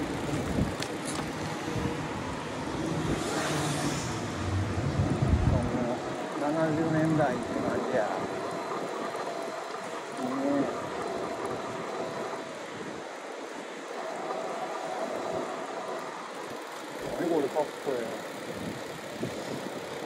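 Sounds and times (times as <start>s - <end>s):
bicycle rolling on pavement: 0.0s - 20.0s.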